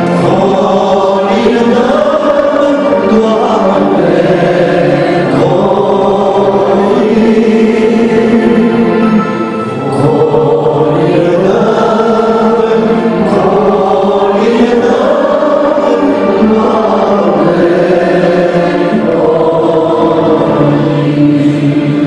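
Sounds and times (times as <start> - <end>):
two men singing in harmony: 0.0 - 22.0.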